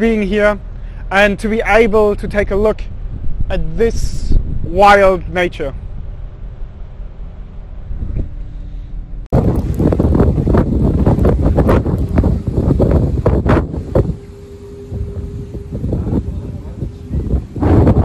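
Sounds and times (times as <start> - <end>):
ship engine low rumble: 0.0 - 18.0
wind on microphone: 1.6 - 18.0.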